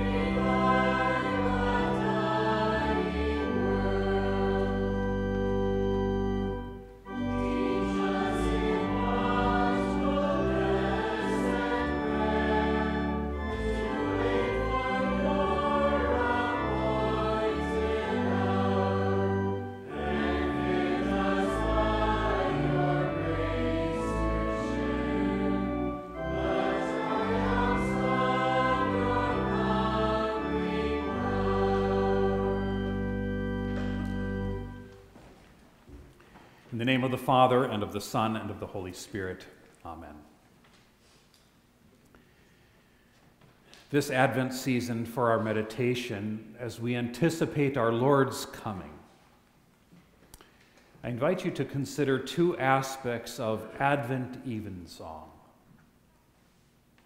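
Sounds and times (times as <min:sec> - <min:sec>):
voices singing a hymn: 0:00.0 - 0:35.1
organ: 0:00.0 - 0:40.3, 0:43.8 - 0:49.2, 0:50.6 - 0:55.5.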